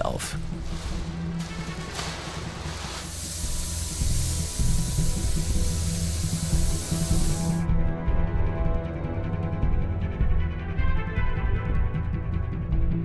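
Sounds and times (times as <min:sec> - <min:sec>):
background music: 0:00.0 - 0:13.0
spray gun hissing: 0:02.6 - 0:07.6.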